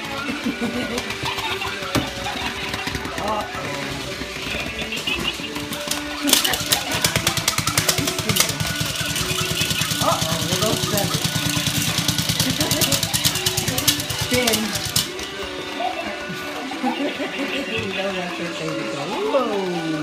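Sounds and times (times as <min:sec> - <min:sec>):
dog toy rattling rapidly: 0:00.0 - 0:20.0
tinny electronic tune: 0:01.5 - 0:20.0.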